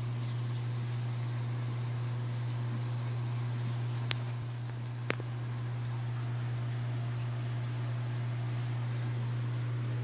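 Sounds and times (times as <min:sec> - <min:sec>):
aquarium equipment hum: 0:00.0 - 0:10.0
even hiss: 0:08.1 - 0:10.0.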